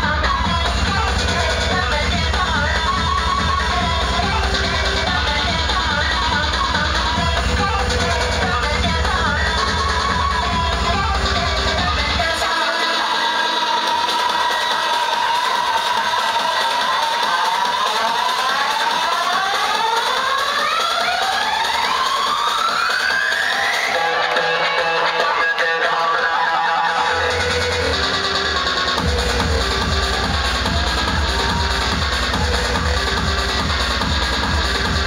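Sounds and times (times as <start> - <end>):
bass: 0.0 - 12.6, 26.8 - 35.0
electronic dance music: 0.0 - 35.0.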